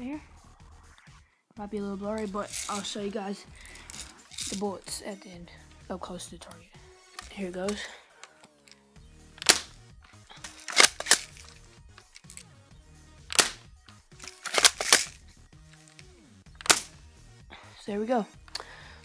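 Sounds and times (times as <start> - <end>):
airsoft shotgun firing: 9.4 - 9.7, 13.3 - 13.6, 16.6 - 16.9
shotgun pump racking clack: 9.4 - 9.7, 10.4 - 12.4, 13.3 - 13.6, 14.2 - 15.2, 16.6 - 16.9.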